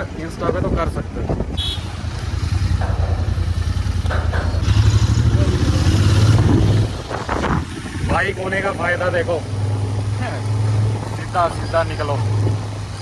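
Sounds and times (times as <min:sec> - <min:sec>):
motorcycle engine running: 0:01.6 - 0:08.6.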